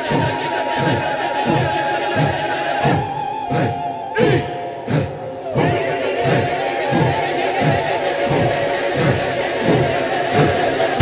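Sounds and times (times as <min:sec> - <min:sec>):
group vocal calls: 0:00.0 - 0:11.0
sustained hazy drone: 0:00.0 - 0:11.0.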